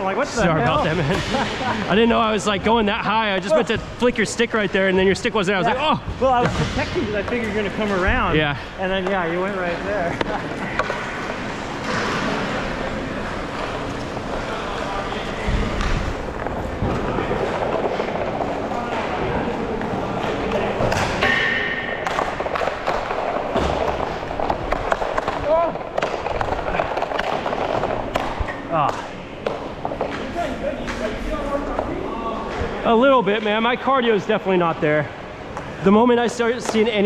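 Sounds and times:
sticks and pucks knocking: 0:08.9 - 0:09.5, 0:10.1 - 0:11.3, 0:19.8 - 0:31.0.

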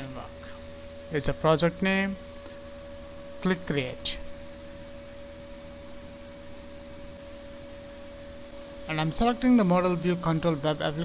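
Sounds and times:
electrical hum and hiss: 0:00.0 - 0:11.0
faint constant tone: 0:00.0 - 0:11.0.

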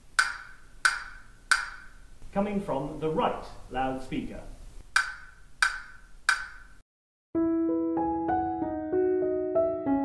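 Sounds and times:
sharp wood-block-like knocks: 0:00.2 - 0:02.0, 0:05.0 - 0:06.8.

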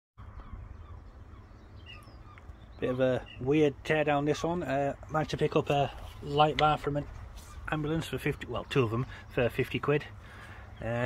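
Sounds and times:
faint birdsong: 0:00.2 - 0:11.0.

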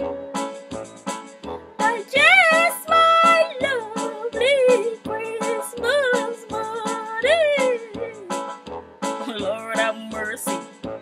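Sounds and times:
backing music with steady beat: 0:00.0 - 0:11.0.

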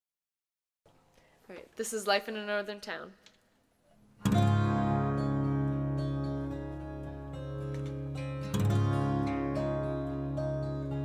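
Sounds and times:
acoustic guitars strumming chord: 0:04.2 - 0:11.0.

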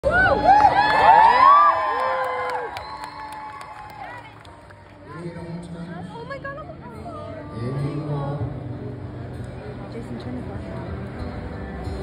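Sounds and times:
audience cheering and whooping: 0:00.0 - 0:04.3.

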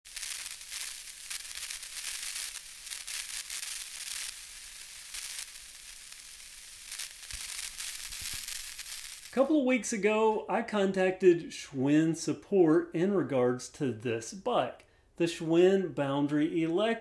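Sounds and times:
crackling static hiss: 0:00.1 - 0:17.0.

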